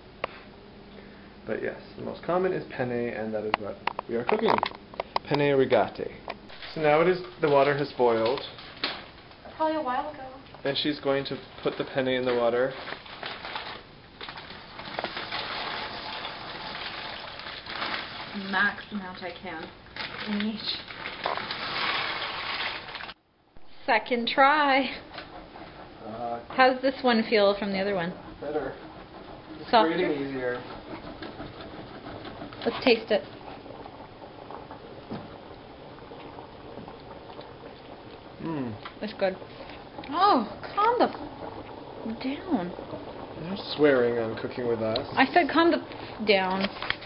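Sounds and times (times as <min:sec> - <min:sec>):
water boiling in a pot: 0:00.0 - 0:47.0
plastic bag crinkling: 0:11.5 - 0:18.9, 0:19.5 - 0:23.2.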